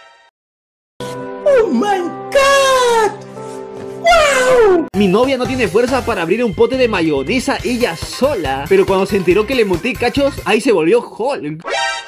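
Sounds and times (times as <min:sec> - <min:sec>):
background music with held notes: 0:01.0 - 0:11.1
man shrieking with laughter: 0:04.0 - 0:04.9.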